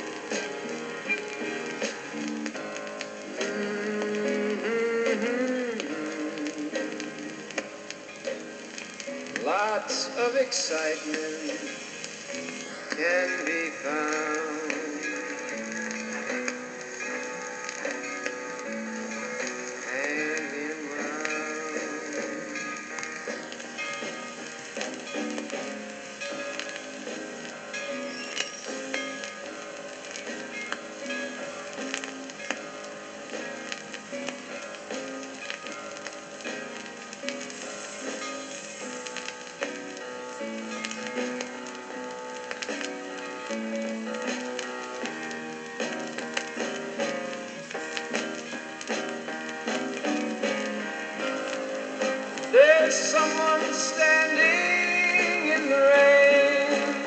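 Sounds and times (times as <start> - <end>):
pop ballad instrumental: 0.0 - 57.0
record surface clicks and crackle: 0.0 - 57.0.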